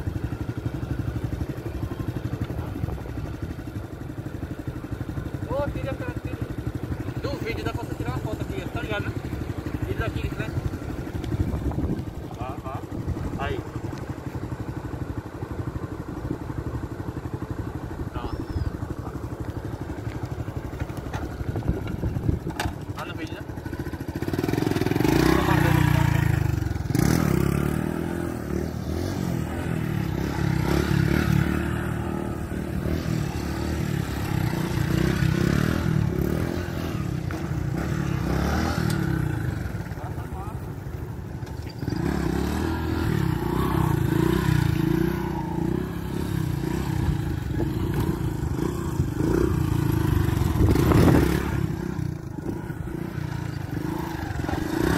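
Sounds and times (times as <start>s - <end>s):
motorcycle engine idling and revving: 0.0s - 54.9s.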